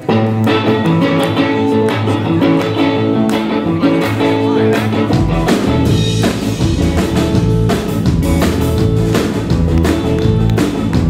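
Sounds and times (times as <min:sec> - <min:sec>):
electric guitar blues riff: 0:00.0 - 0:11.0.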